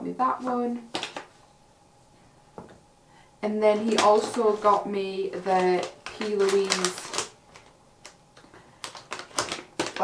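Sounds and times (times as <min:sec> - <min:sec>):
paper rustling and crinkling: 0:03.7 - 0:10.0.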